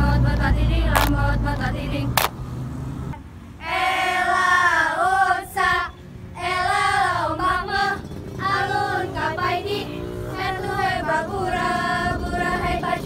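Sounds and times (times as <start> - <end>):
girls singing in unison: 0.0 - 2.3, 3.6 - 13.0.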